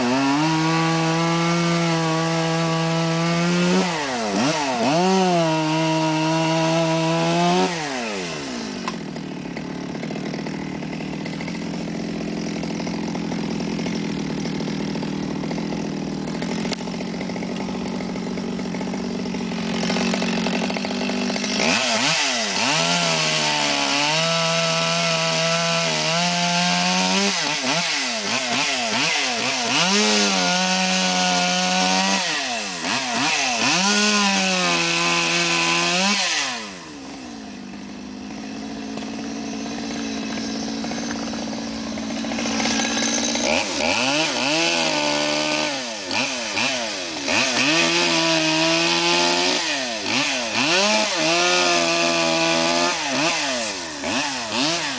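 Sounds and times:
chainsaw cutting wood: 0:00.0 - 0:54.9.

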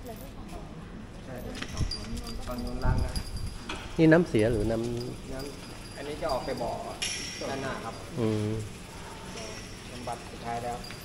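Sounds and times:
voices talking quietly: 0:00.0 - 0:11.0.

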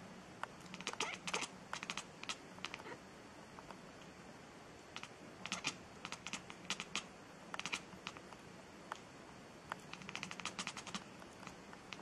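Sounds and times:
light sharp clicks and taps: 0:09.7 - 0:12.0.

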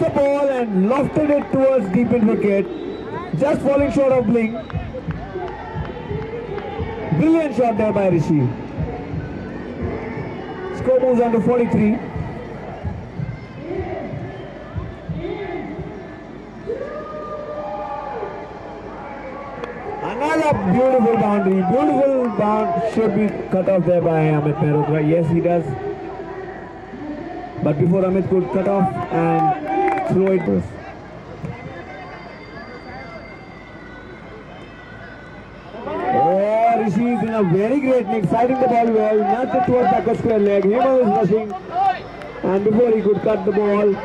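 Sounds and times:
faint distant voices: 0:00.0 - 0:44.0
people shouting outdoors: 0:00.0 - 0:44.0.

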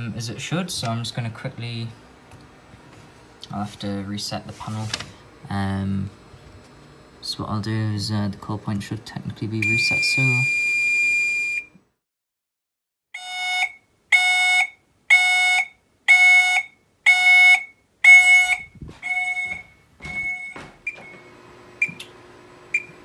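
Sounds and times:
control panel key beeps: 0:09.6 - 0:10.7
fire alarm steady tone: 0:09.6 - 0:11.7, 0:13.2 - 0:22.0
fire alarm pulsed tone: 0:09.6 - 0:11.8, 0:13.2 - 0:22.0, 0:22.7 - 0:23.0.

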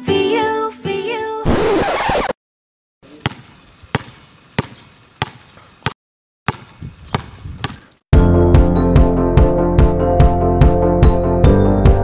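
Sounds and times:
basketball bouncing on court: 0:03.1 - 0:08.0.

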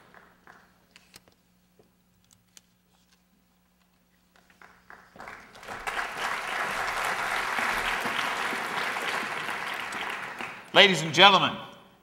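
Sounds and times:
audience applauding: 0:04.5 - 0:10.8.

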